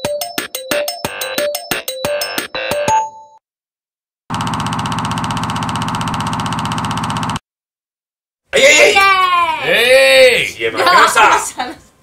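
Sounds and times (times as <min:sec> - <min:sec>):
electronic keyboard music: 0:00.0 - 0:03.4.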